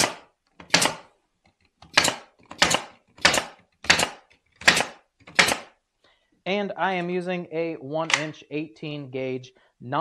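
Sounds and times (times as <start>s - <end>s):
brad nailer firing into wood: 0.0s - 1.1s, 1.8s - 5.7s.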